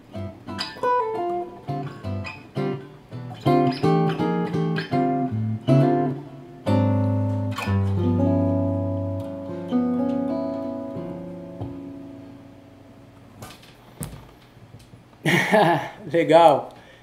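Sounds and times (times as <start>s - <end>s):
jazz guitar chords ringing: 0.0s - 14.0s.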